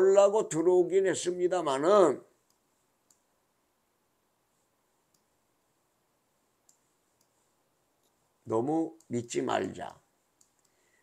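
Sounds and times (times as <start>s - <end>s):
computer mouse clicks: 10.4s - 10.8s.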